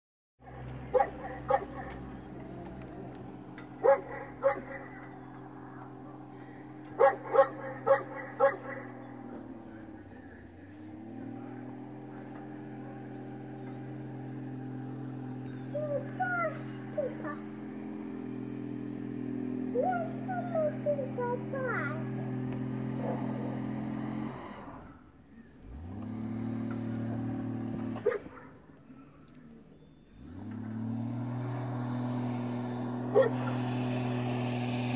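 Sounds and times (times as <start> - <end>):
car engine running: 0.4 - 34.9
dog barking: 0.9 - 2.1, 3.8 - 5.1, 7.0 - 9.0, 23.0 - 23.6, 28.0 - 29.2, 33.1 - 33.5.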